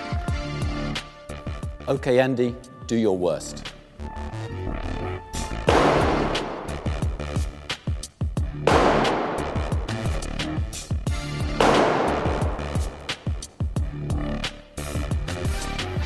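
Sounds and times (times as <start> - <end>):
echoing bangs in empty hall: 5.6 - 7.6, 8.5 - 10.4, 11.4 - 13.9.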